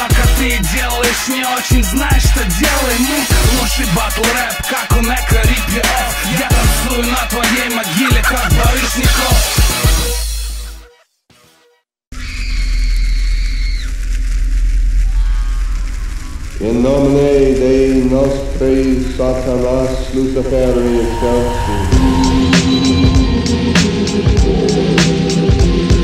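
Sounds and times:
steady drum beat: 0.0s - 10.3s, 21.9s - 26.0s
deep bass drone: 1.7s - 10.6s, 13.9s - 26.0s
sliding melodic line: 20.4s - 25.5s.

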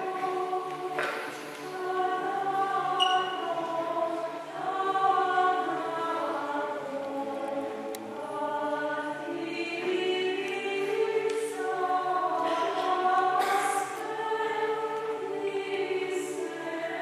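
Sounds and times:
choir chanting: 0.0s - 17.0s.

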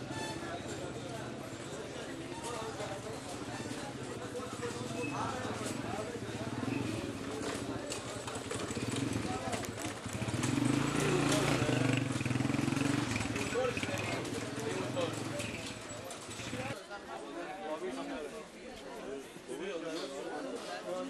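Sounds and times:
many voices talking: 0.0s - 21.0s.

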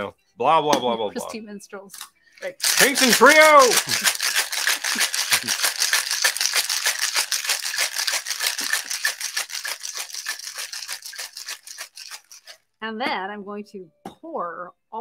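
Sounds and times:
ice rattling in cocktail shaker: 2.4s - 12.7s.

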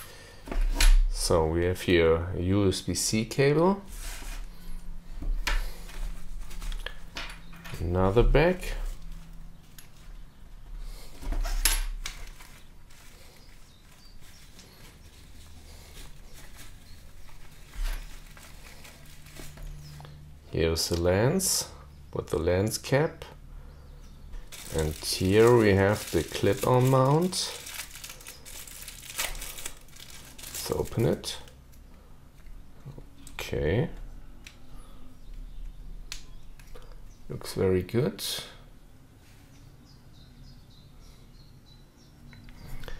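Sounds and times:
fabric rustling: 12.1s - 20.0s.

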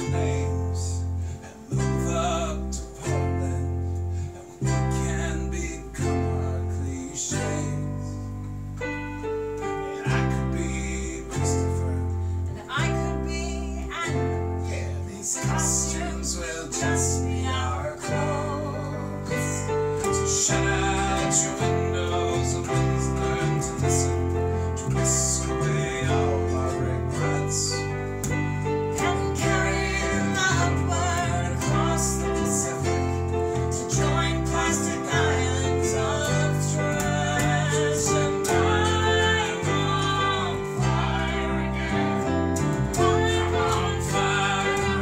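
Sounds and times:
electric bass notes: 0.0s - 45.0s
electric keyboard: 0.0s - 45.0s
strummed acoustic guitar: 10.0s - 45.0s.

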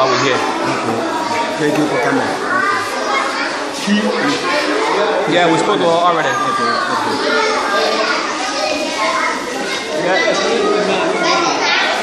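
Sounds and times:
young children chattering: 0.0s - 12.0s.

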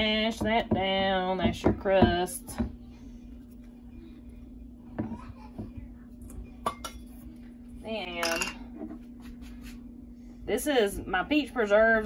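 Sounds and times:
steady low hum: 0.0s - 12.0s
metal utensils clinking on glass: 8.2s - 8.6s.

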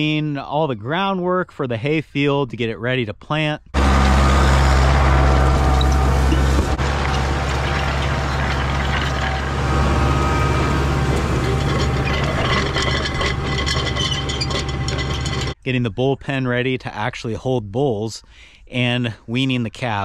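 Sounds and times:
implement clattering: 3.8s - 15.6s
tractor engine running: 3.8s - 15.6s.

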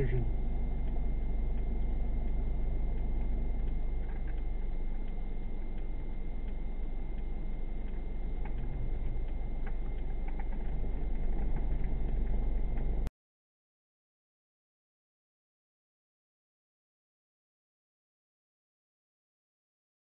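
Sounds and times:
vehicle idling rumble: 0.0s - 13.1s
faint ticks: 0.8s - 13.1s.

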